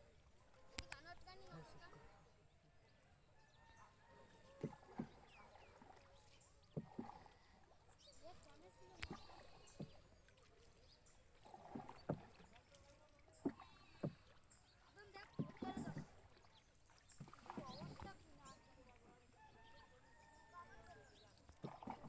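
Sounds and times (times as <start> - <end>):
soft water sounds: 0.0 - 22.0.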